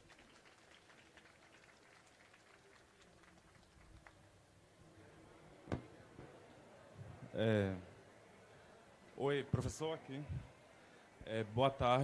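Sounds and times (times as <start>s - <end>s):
faint audience applause: 0.0s - 4.4s.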